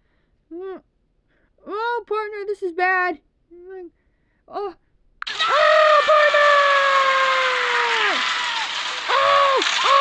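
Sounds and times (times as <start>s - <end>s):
long scream sliding down: 5.2s - 10.0s.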